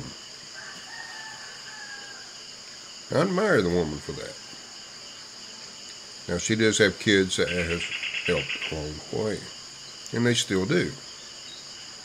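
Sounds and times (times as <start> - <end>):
rooster crowing: 0.5 - 2.5.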